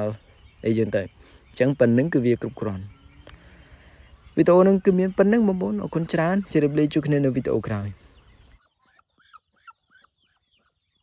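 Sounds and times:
faint fowl calls: 0:00.0 - 0:11.0.

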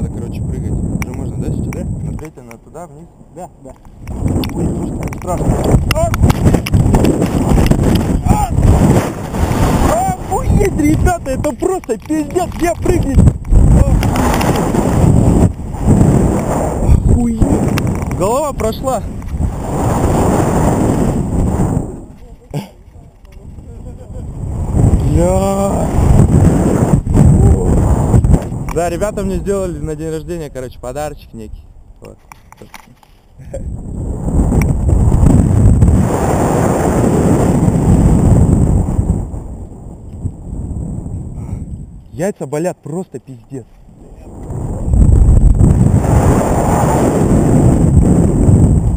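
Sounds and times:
wind buffeting microphone: 0:00.0 - 0:48.9.

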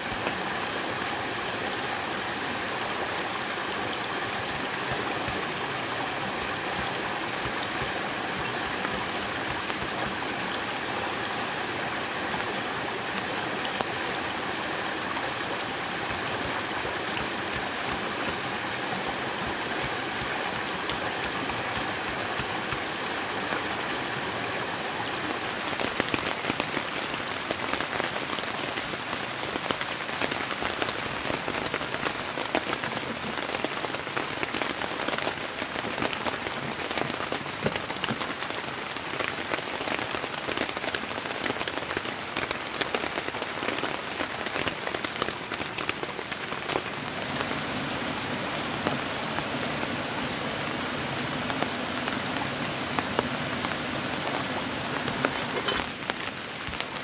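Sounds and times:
raindrops ticking on surfaces: 0:00.0 - 0:57.0
steady rain falling: 0:00.0 - 0:57.0.

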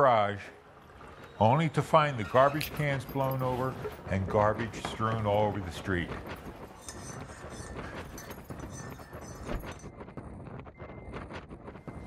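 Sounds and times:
gusty wind: 0:00.0 - 0:12.0.

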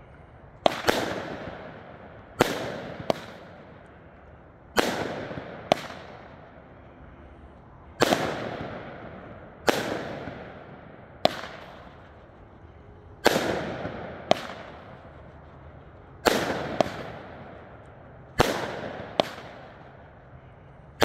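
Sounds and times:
firework bangs: 0:00.6 - 0:03.9, 0:04.7 - 0:06.5, 0:08.0 - 0:12.3, 0:13.2 - 0:15.6, 0:16.2 - 0:21.0.

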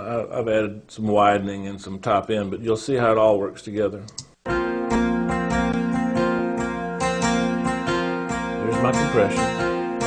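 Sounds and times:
acoustic guitar strumming: 0:04.5 - 0:10.0.

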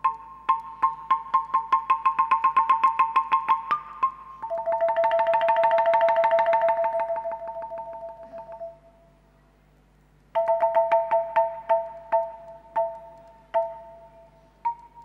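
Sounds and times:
bamboo xylophone struck with mallets: 0:00.0 - 0:08.9, 0:10.3 - 0:15.0.

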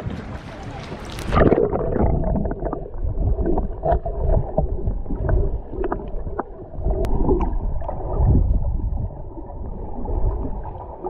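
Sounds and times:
underwater rumble of moving water: 0:00.0 - 0:11.0
water sloshing: 0:00.0 - 0:11.0
faint underwater clicks: 0:00.4 - 0:08.3
bubbling: 0:00.8 - 0:11.0.

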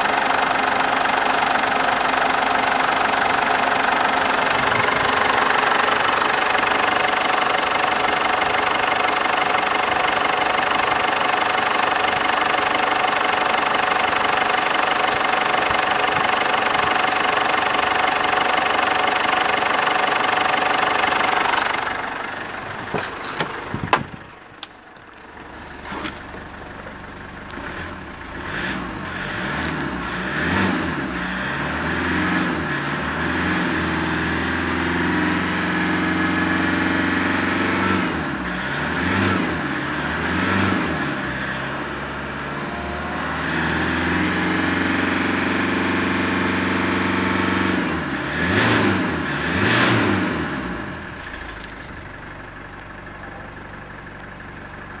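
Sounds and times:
diesel engine revving and idling: 0:00.0 - 0:55.0.

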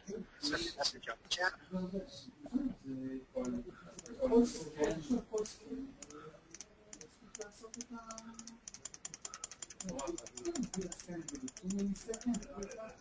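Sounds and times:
computer keyboard typing: 0:03.4 - 0:13.0.

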